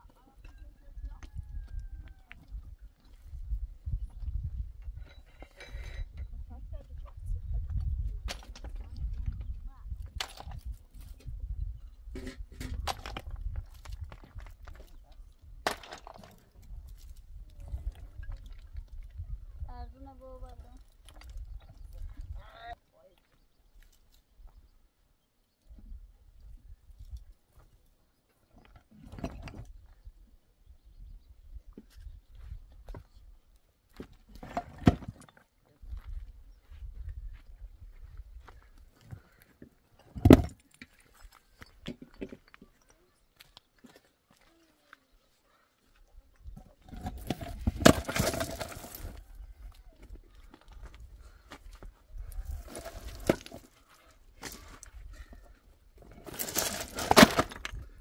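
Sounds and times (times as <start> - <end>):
wind rumble on microphone: 0.5 - 15.6, 16.7 - 22.5, 35.8 - 38.7
stones knocking and scraping: 7.6 - 19.2, 20.8 - 22.4, 33.9 - 36.2, 38.5 - 42.9, 46.4 - 58.0
footsteps on loose stone: 12.6 - 19.2, 46.5 - 49.4, 50.2 - 58.0.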